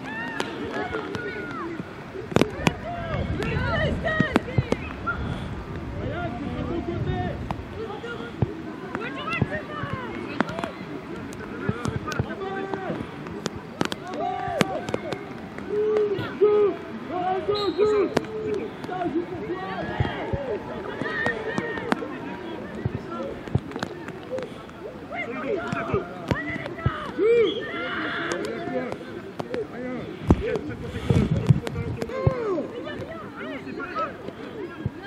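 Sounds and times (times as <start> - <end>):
people shouting and calling: 0.0 - 35.0.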